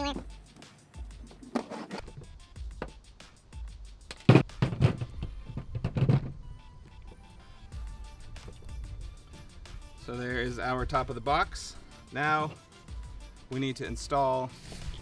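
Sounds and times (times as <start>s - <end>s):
music with steady beat: 0.0s - 15.0s.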